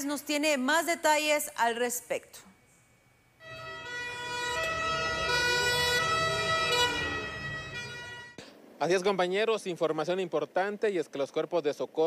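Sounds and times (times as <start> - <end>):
emergency vehicle siren: 3.4 - 8.4.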